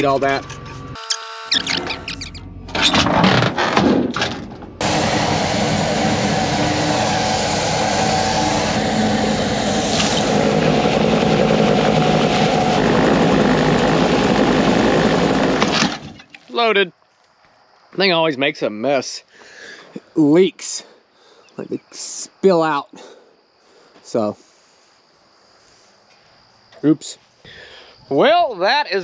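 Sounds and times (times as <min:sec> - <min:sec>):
engine running loudly: 0:04.8 - 0:16.0.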